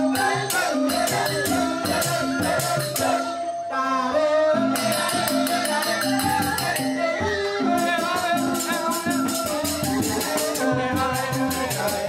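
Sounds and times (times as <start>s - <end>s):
rattling percussion beat: 0.0s - 3.4s, 4.7s - 12.0s
men's voices singing: 0.0s - 12.0s.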